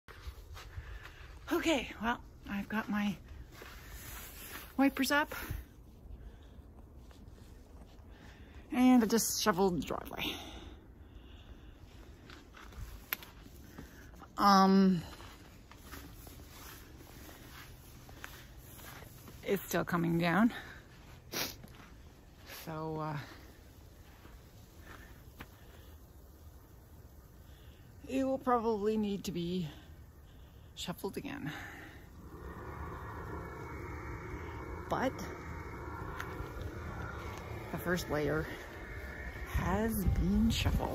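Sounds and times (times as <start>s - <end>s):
low rumble: 31.6s - 40.9s.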